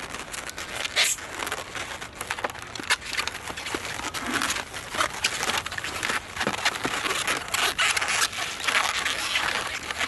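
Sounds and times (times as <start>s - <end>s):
balloon squeaking and rubbing: 0.0s - 10.0s.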